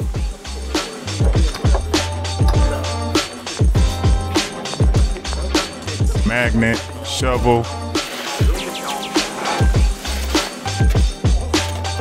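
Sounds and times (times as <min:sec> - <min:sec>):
hip-hop music with steady beat: 0:00.0 - 0:12.0.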